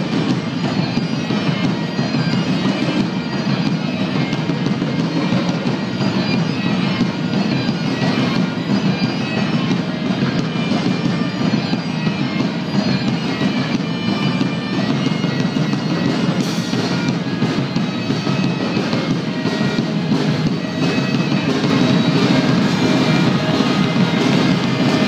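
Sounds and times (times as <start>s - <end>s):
bagpipes playing: 0.0s - 25.0s
folk-rock band playing: 0.0s - 25.0s.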